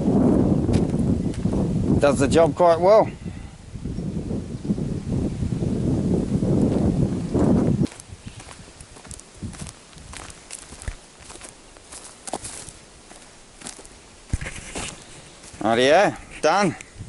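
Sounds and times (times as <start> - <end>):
footsteps on dry leaves: 7.8 - 16.5.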